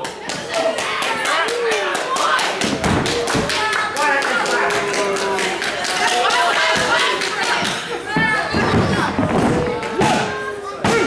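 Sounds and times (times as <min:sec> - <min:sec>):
crowd clapping in rhythm: 0:00.0 - 0:08.0.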